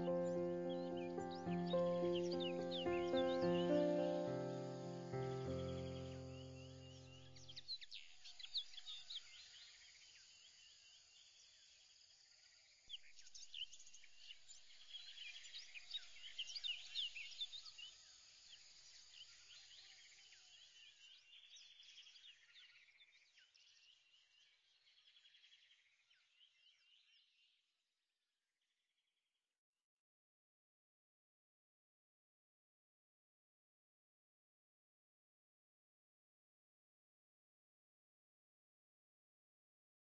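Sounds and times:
music chord: 0:00.0 - 0:07.0
birds chirping: 0:00.0 - 0:09.1.

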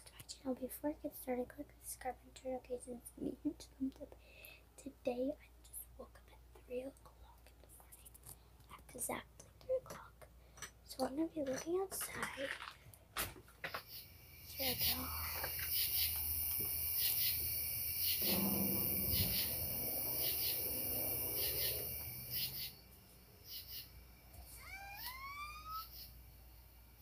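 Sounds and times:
night insects chorus: 0:13.7 - 0:27.0
short rising whine-like call: 0:18.0 - 0:23.9.

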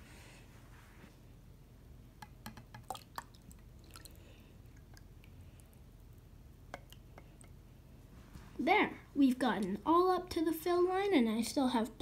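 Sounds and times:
water trickling and dripping: 0:02.8 - 0:06.2.

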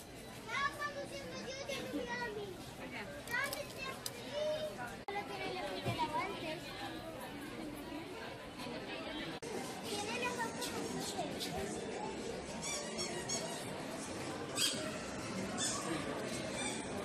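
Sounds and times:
shoppers chattering: 0:00.0 - 0:17.0.

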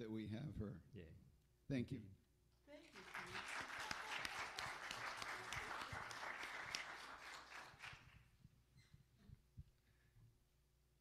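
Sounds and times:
congregation applauding: 0:02.8 - 0:08.3.

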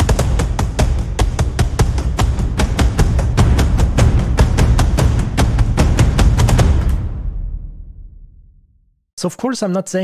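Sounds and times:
punchy percussion hits: 0:00.0 - 0:08.6.

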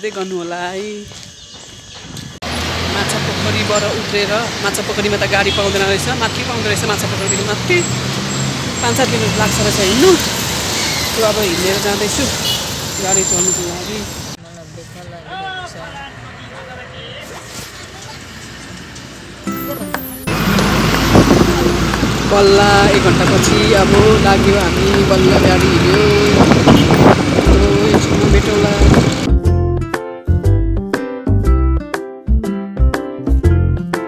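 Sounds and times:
traffic engine hum: 0:00.8 - 0:29.4
voices: 0:02.8 - 0:29.3
woman talking: 0:02.9 - 0:07.9, 0:08.8 - 0:10.3, 0:11.2 - 0:12.4, 0:13.0 - 0:14.1, 0:21.3 - 0:26.6, 0:27.4 - 0:29.3.

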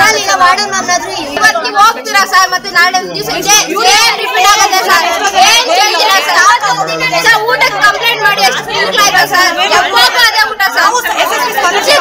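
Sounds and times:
young women chattering: 0:00.0 - 0:12.0.

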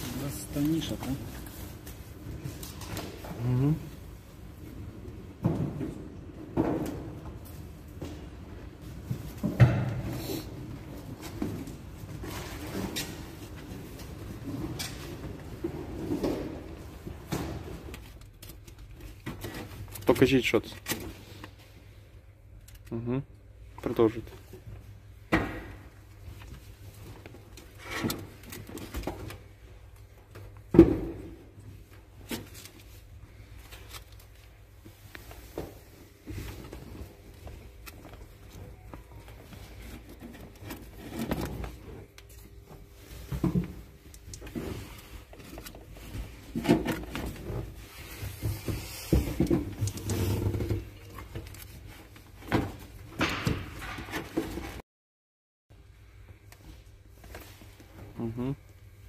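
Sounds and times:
objects handled knocking and scraping: 0:24.2 - 0:54.8.

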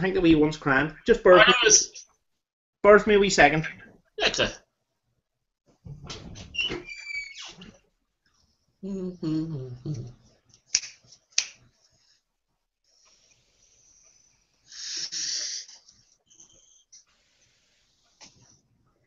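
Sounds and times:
man talking: 0:00.0 - 0:02.0, 0:02.8 - 0:04.6
finger snaps: 0:10.7 - 0:11.6.

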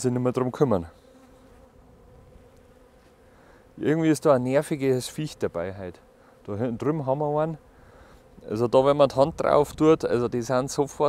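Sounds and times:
honeybee buzzing: 0:00.0 - 0:11.0.

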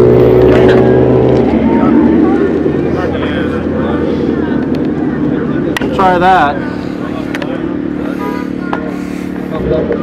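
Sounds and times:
engine idling hum: 0:00.0 - 0:10.0.

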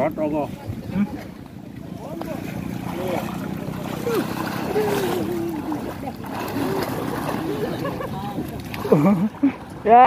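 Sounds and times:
people calling out: 0:02.9 - 0:08.4.

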